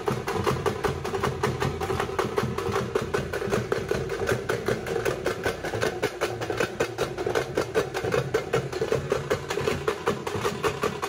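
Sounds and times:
frame drums beating fast: 0.0 - 11.0.

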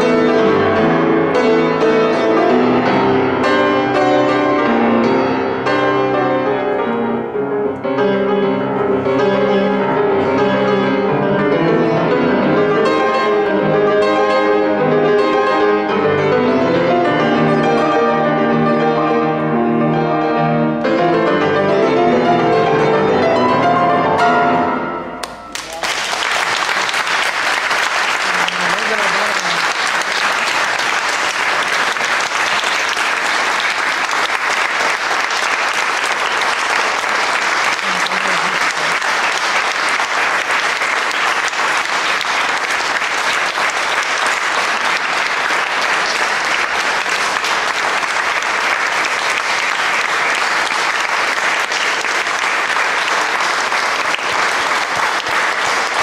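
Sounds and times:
audience applauding: 25.2 - 56.0.

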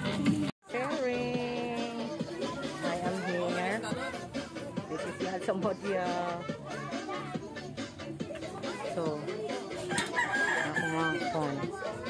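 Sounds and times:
people talking: 0.7 - 12.0
rooster crowing: 9.9 - 11.5.

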